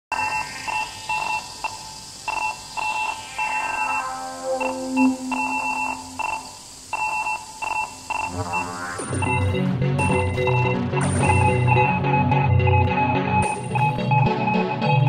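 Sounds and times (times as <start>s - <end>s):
electronic music with high beeps: 0.1s - 15.0s
low held tone: 3.4s - 6.6s.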